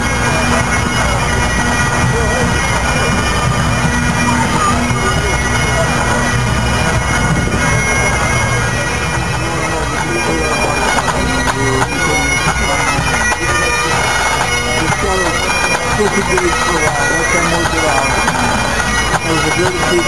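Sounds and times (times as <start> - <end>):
bagpipe band playing: 0.0 - 20.0.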